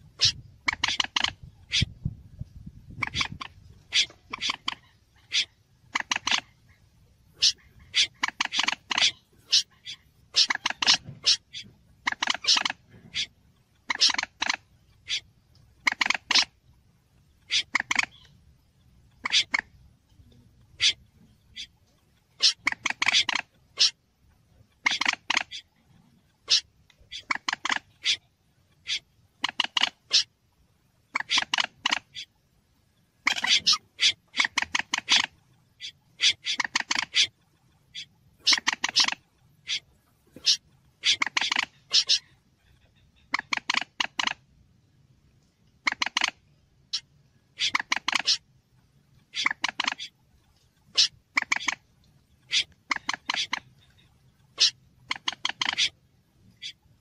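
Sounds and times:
recorded bird calls: 0:00.0 - 0:57.0.

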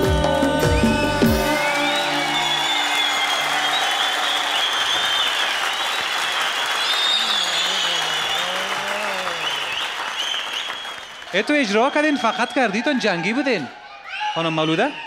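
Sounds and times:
audience applauding and cheering: 0:00.8 - 0:15.0.

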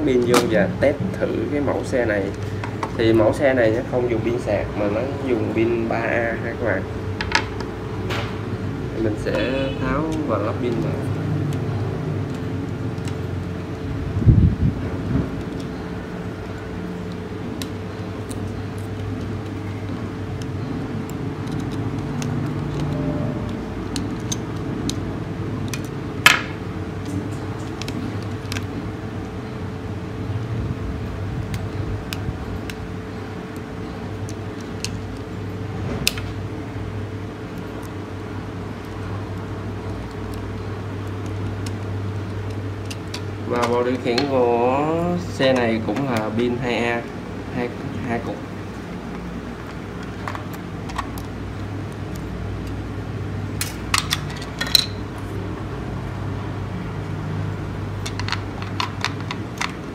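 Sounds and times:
steady background hum: 0:00.0 - 0:59.9.

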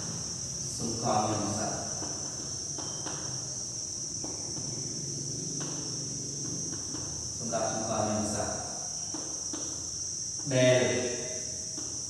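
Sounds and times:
steady high-pitched drone: 0:00.0 - 0:12.0.

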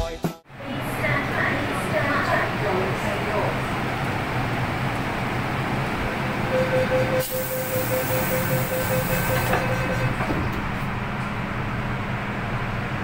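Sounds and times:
train carriage hum: 0:00.0 - 0:13.0
door warning beeps: 0:06.5 - 0:10.2
hiss: 0:07.2 - 0:09.4
train doors knocking shut: 0:08.8 - 0:10.9.

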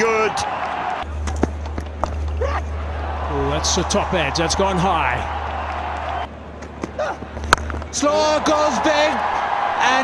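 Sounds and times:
stadium crowd noise: 0:00.0 - 0:10.0
bat cracking on ball: 0:06.8 - 0:07.9.

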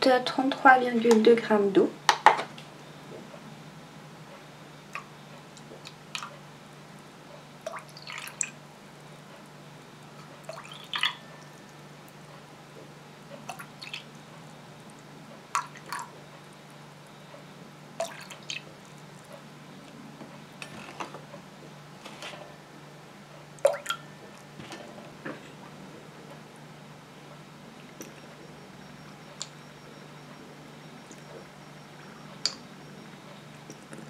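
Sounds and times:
faint low hum: 0:00.0 - 0:34.0
water dripping into metal bowl: 0:10.4 - 0:11.5, 0:13.5 - 0:14.1, 0:15.6 - 0:16.1, 0:18.0 - 0:19.3.

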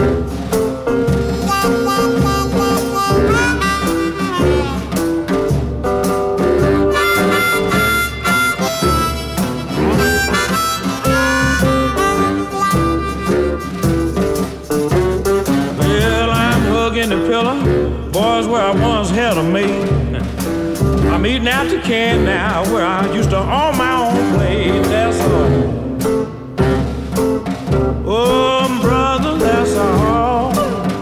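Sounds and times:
blues harmonica solo: 0:00.0 - 0:17.1
band playing guitar bass drums: 0:00.0 - 0:31.0.

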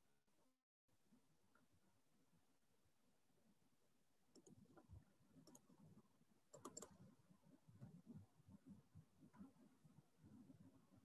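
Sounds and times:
computer clicking: 0:04.3 - 0:04.8, 0:05.4 - 0:05.8, 0:06.5 - 0:07.0.

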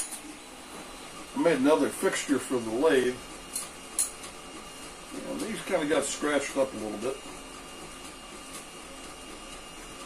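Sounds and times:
printer whirring: 0:00.0 - 0:10.0.

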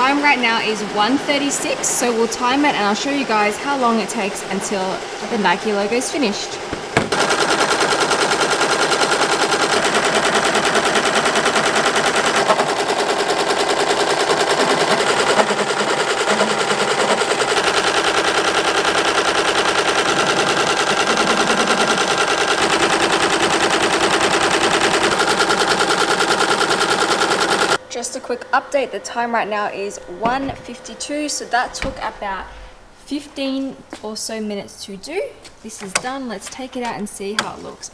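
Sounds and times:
embroidery machine rattling: 0:00.0 - 0:27.8.

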